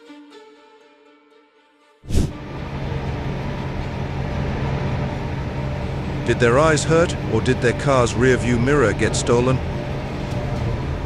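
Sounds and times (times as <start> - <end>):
soft string music: 0.0 - 11.0
low hum: 2.1 - 11.0
vehicle rumble: 2.1 - 11.0.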